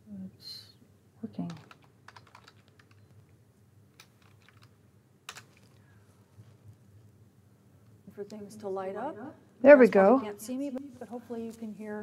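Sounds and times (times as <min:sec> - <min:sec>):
computer keyboard keystrokes: 0:01.4 - 0:03.1, 0:04.0 - 0:04.7, 0:05.3 - 0:05.7.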